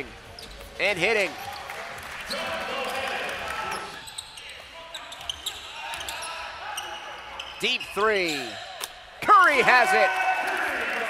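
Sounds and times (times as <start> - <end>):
shoe squeaks on court: 0.2 - 0.8, 3.7 - 8.7.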